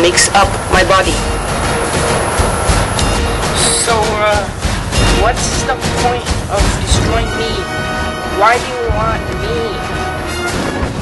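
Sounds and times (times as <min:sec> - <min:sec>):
loud rushing noise: 0:00.0 - 0:08.3.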